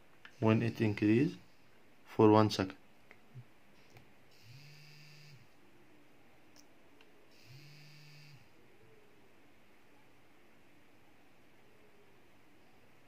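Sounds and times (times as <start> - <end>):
vibration motor buzzing: 4.4 - 5.4, 7.4 - 8.5.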